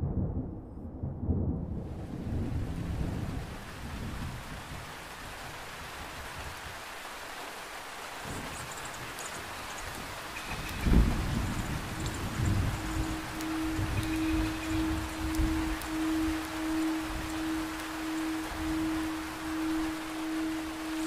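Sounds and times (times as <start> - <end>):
thunder rumbling: 0.0 - 4.9, 9.9 - 21.0
rain: 1.2 - 21.0
meditation music drone: 10.9 - 21.0.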